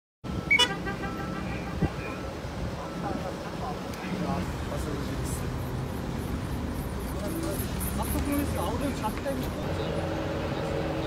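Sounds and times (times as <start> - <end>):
vehicle engines running: 0.2 - 11.0
vehicle horn toot: 0.4 - 2.2.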